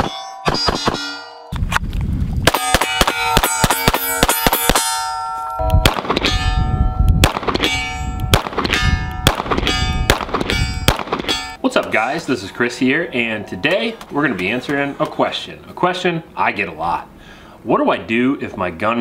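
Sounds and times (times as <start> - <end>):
pistol shots: 2.4 - 5.0, 5.8 - 6.3, 7.2 - 11.3
steel plates clanging: 2.6 - 6.8, 7.6 - 11.6.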